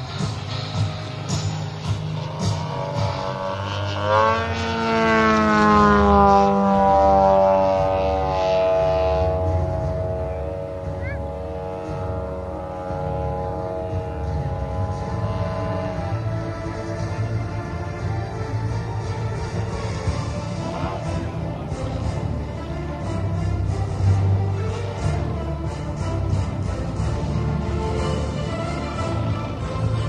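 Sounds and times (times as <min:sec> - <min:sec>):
model plane engine and propeller: 0:00.0 - 0:30.0.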